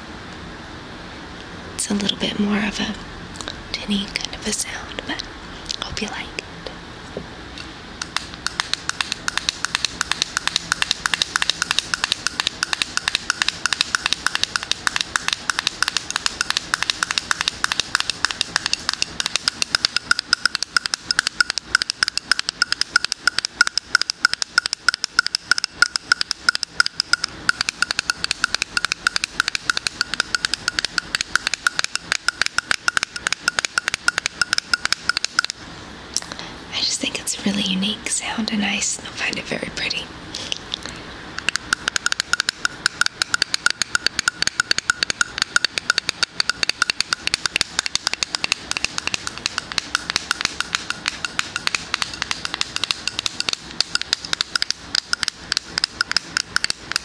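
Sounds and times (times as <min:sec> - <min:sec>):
fingers tapping metal lid: 0:08.0 - 0:35.6, 0:41.4 - 0:57.0.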